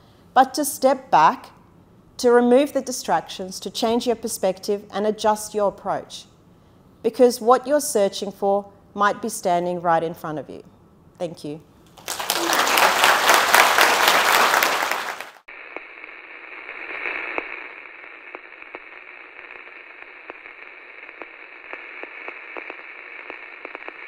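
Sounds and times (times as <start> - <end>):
audience applauding: 12.0 - 15.5.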